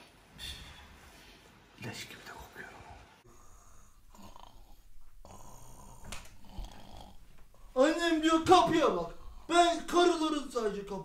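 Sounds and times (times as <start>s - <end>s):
man snoring softly: 3.2s - 7.3s.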